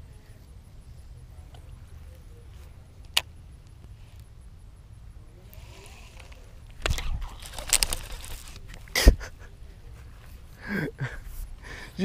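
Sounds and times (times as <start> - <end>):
rod and reel clicks and rattles: 5.5 - 8.8.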